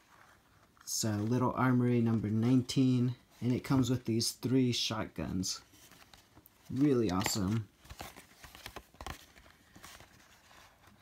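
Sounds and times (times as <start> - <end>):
cardboard box handling rustle: 5.7 - 11.0.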